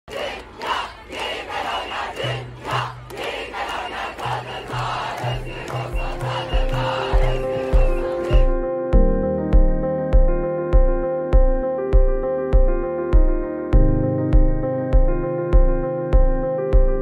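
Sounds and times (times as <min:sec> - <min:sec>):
crowd shouting and chanting: 0:00.1 - 0:08.6
electronic music with deep beats: 0:04.7 - 0:17.0.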